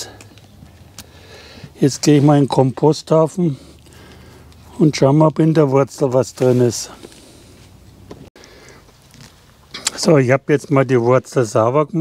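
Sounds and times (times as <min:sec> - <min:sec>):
outdoor background hiss: 0:00.0 - 0:12.0
man's voice: 0:01.8 - 0:03.8, 0:04.7 - 0:07.0, 0:09.8 - 0:12.0.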